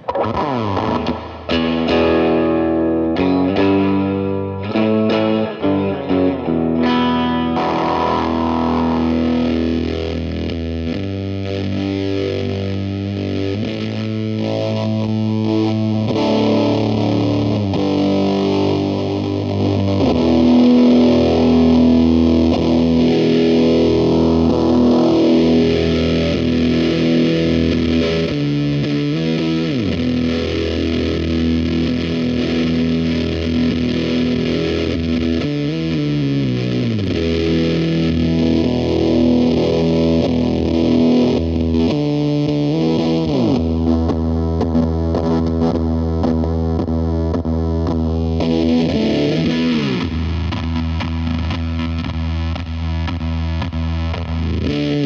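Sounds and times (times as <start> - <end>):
electric guitar with fuzz distortion: 0.0 - 55.0.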